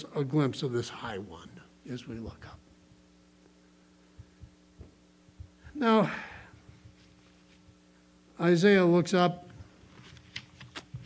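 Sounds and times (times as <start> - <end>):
low electrical hum: 0.0 - 11.0
soft low thumps: 4.1 - 5.8.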